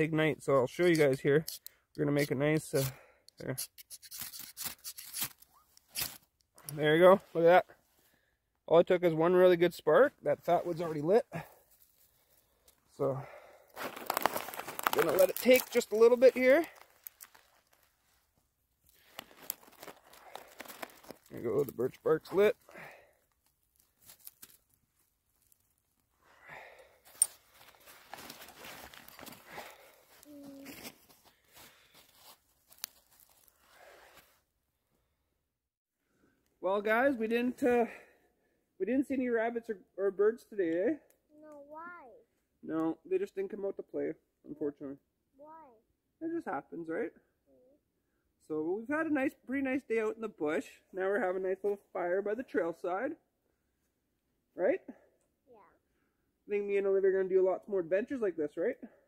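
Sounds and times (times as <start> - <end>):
ferro rod scraped with striker: 0.9 - 6.2
twigs snapping and crackling: 13.8 - 17.9, 18.9 - 21.8, 23.3 - 24.8, 32.7 - 33.5.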